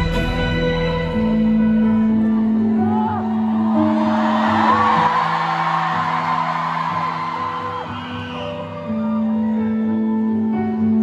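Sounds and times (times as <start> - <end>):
pulsing bass: 0.0 - 2.6
crowd whooping and yelling: 2.1 - 9.6.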